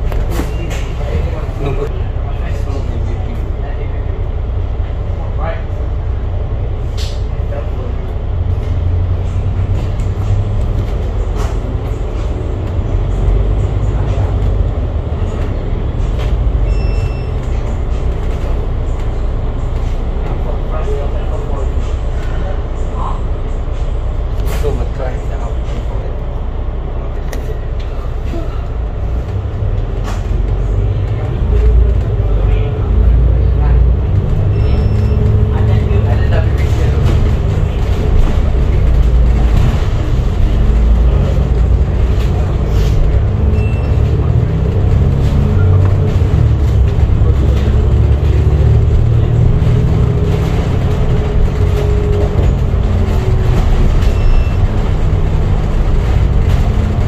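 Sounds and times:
bus engine and road drone: 0:00.0 - 0:57.0.

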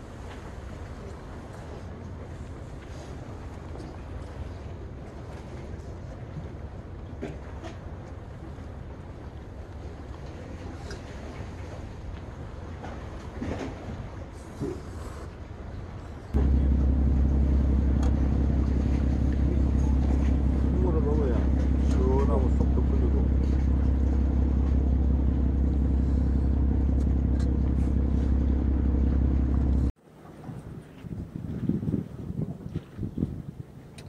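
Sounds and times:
low motor drone: 0:16.4 - 0:30.0.

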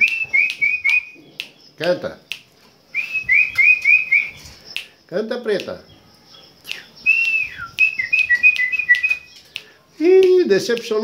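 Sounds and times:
bird whistling notes: 0:00.0 - 0:01.7, 0:02.9 - 0:05.0, 0:06.6 - 0:09.6
sharp bird clicks: 0:00.0 - 0:11.0.

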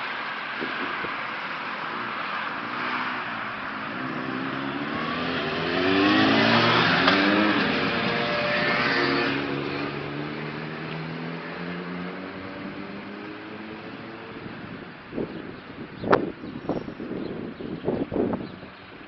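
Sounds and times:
street traffic hum: 0:00.0 - 0:19.0
motor scooter accelerating past: 0:02.6 - 0:13.8.

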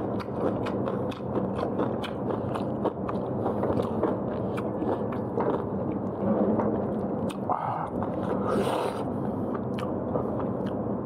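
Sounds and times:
person chewing food: 0:00.0 - 0:11.0
wet mouth clicks: 0:07.2 - 0:10.0.

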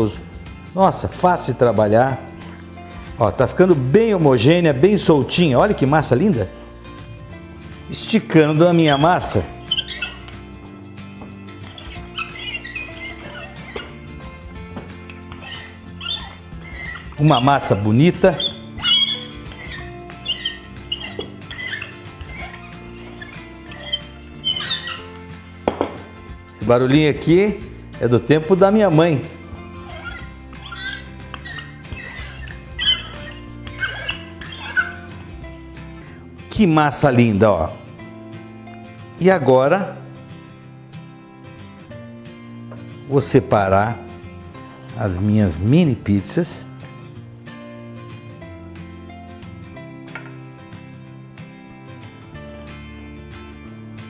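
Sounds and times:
soft background music: 0:00.0 - 0:54.0
rolling pin squeaking: 0:07.9 - 0:36.2.

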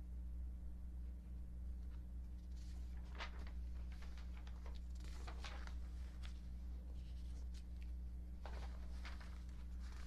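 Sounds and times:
low electrical hum: 0:00.0 - 0:10.0
papers rustling: 0:01.8 - 0:10.0.

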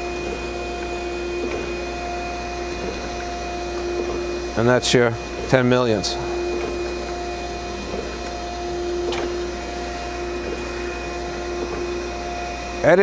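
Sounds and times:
grinder machine hum: 0:00.0 - 0:13.0.

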